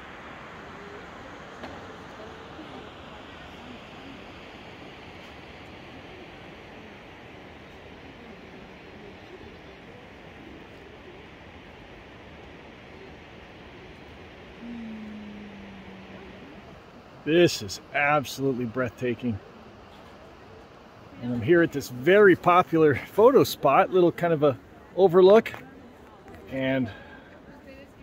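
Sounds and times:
low hum: 0:00.0 - 0:22.1
faint distant voices: 0:00.0 - 0:28.0.

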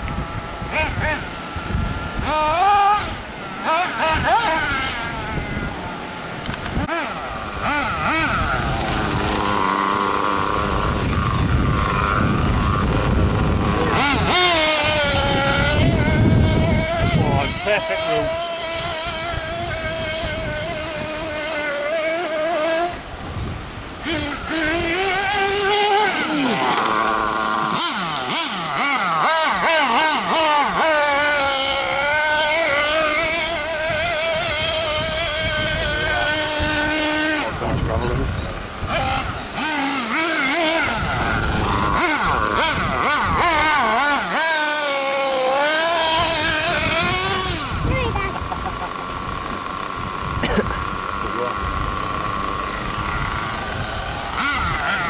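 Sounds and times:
rc buggy engine revving: 0:00.0 - 0:55.0.

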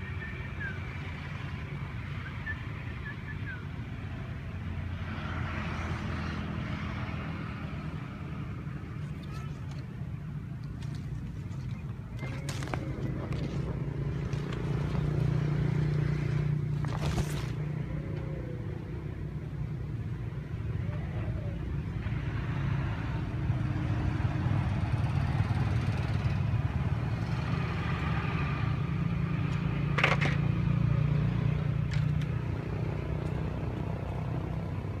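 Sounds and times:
traffic rumble: 0:00.0 - 0:35.0.

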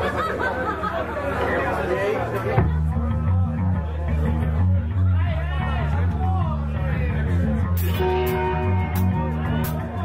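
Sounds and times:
audience chatter: 0:00.0 - 0:10.0
live rock band playing: 0:06.8 - 0:10.0.

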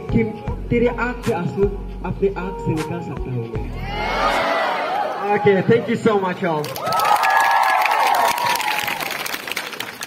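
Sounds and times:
high held crowd shout: 0:03.8 - 0:05.9
audience clapping and cheering: 0:06.6 - 0:10.0.

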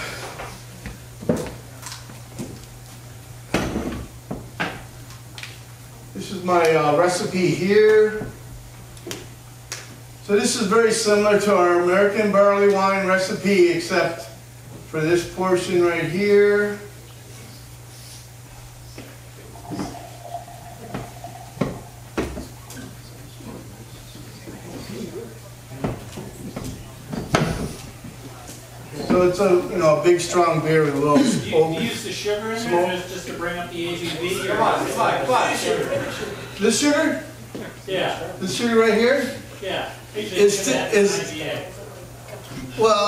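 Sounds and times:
steady low hum: 0:00.0 - 0:42.8.

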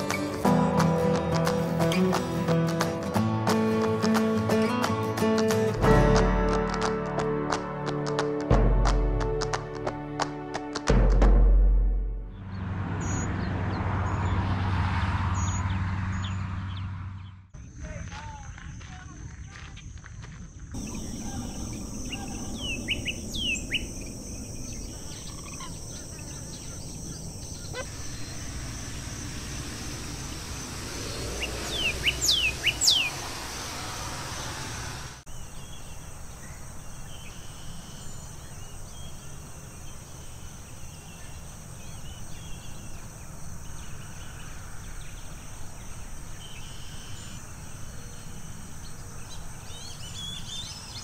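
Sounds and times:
insects trilling: 0:17.6 - 0:51.0.

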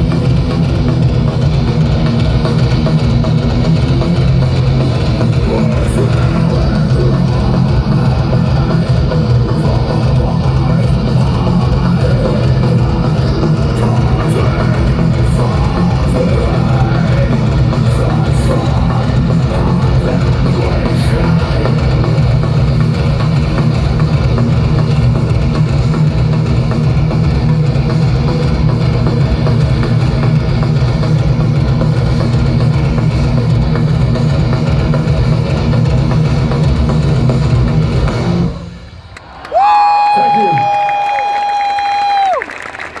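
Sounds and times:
heavy metal band playing live: 0:00.0 - 0:39.0
crowd cheering and clapping: 0:38.7 - 0:43.0.

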